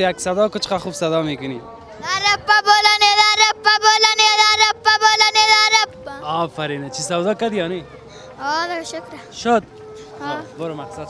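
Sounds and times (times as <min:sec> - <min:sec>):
child singing unaccompanied: 0:02.0 - 0:06.5, 0:08.3 - 0:09.3, 0:10.2 - 0:10.6.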